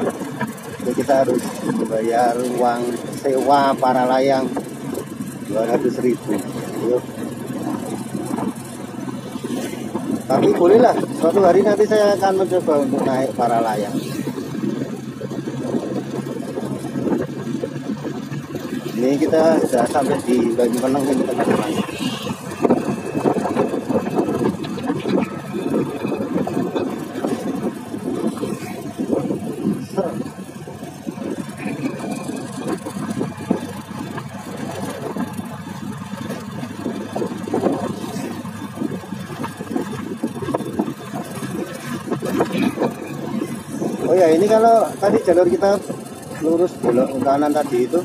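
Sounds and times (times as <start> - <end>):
motorcycle engine running: 0.0 - 48.0
wind on microphone: 0.0 - 48.0.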